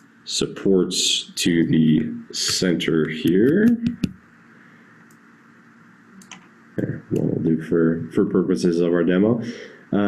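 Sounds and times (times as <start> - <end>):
computer mouse click: 6.2 - 6.5.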